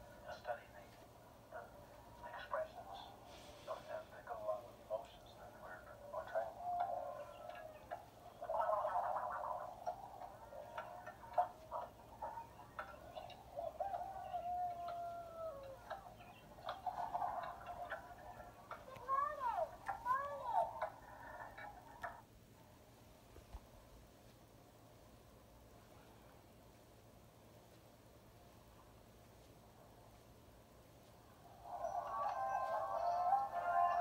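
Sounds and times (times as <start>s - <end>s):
tinny speaker audio: 0.0s - 22.2s.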